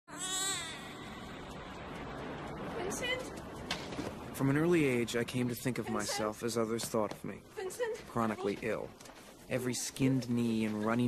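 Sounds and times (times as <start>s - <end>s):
high-pitched falling cry: 0.1s - 1.5s
steady background noise: 0.1s - 11.0s.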